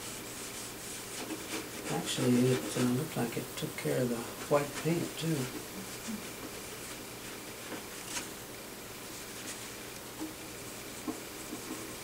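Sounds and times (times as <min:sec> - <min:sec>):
cloth rubbing on wooden frame: 0:00.0 - 0:03.3.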